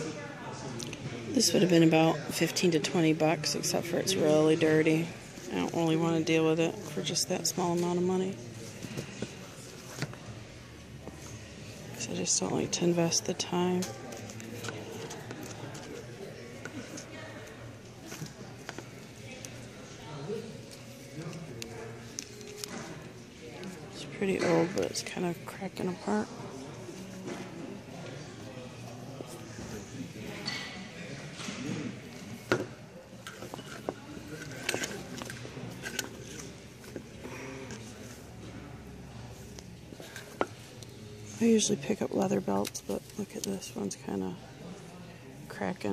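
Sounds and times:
faint background voices: 0:00.0 - 0:45.9
clicks and knocks of handled items: 0:32.4 - 0:37.9.

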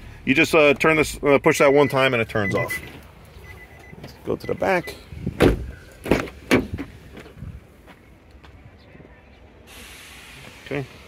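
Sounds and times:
car door knocks: 0:05.3 - 0:07.0
car door thud: 0:05.3 - 0:07.0
steady hiss: 0:09.7 - 0:11.0.

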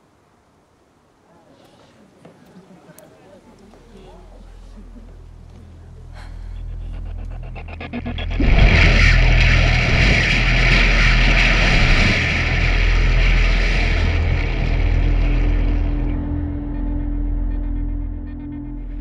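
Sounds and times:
low musical drone: 0:03.9 - 0:19.0.

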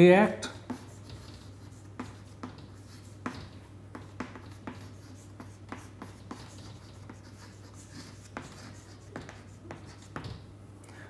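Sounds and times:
chalk tapping and scratching: 0:00.5 - 0:10.4.

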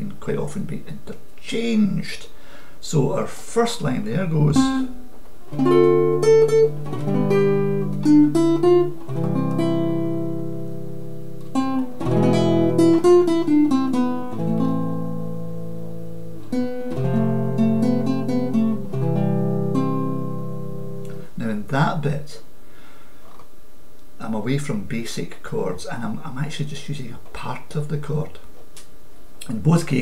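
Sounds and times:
fingerstyle classical guitar: 0:04.4 - 0:21.3.

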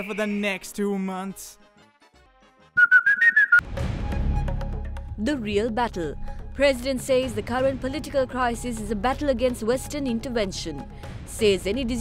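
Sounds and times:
whistled jingle: 0:00.0 - 0:00.7, 0:02.8 - 0:03.6
low rumbling music: 0:03.7 - 0:12.0.

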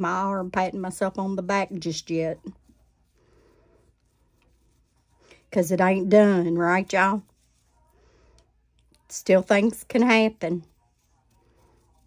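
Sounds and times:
brush rubbing softly: 0:00.0 - 0:12.0.

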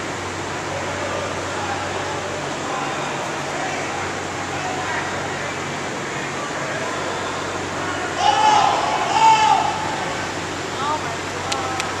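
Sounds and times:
indoor hall hum: 0:00.0 - 0:12.0
person shouting: 0:08.2 - 0:10.1.

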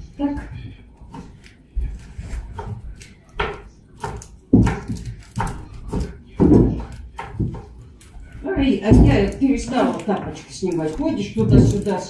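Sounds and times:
irregular knocks and clatters: 0:00.2 - 0:12.0.

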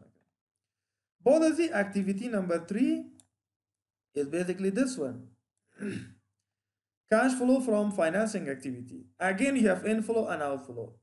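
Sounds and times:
man speaking: 0:01.2 - 0:03.2, 0:04.2 - 0:06.0, 0:07.1 - 0:11.0.

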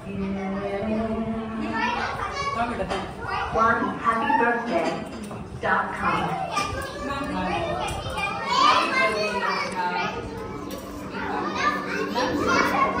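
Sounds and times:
children chattering: 0:00.0 - 0:13.0.

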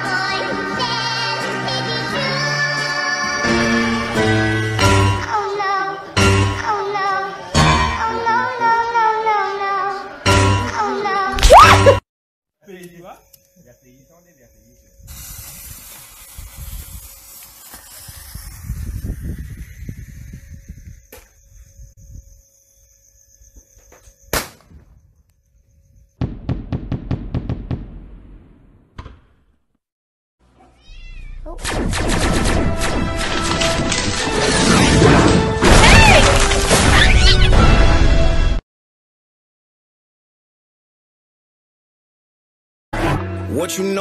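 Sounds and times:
background music: 0:00.0 - 0:12.0, 0:43.0 - 0:44.0
firework fuse hissing: 0:15.0 - 0:21.4
firework bang: 0:26.2 - 0:29.3.

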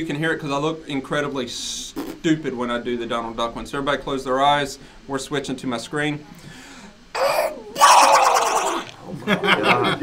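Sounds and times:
man doing duck voice: 0:07.2 - 0:08.9.

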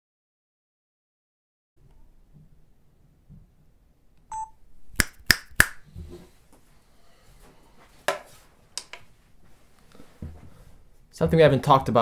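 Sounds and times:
short electronic beep: 0:04.3 - 0:04.6.

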